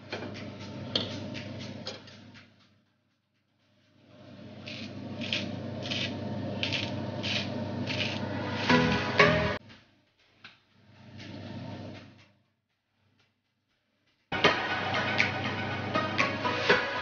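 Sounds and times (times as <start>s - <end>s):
pepper grinder rasping: 4.6s - 8.3s.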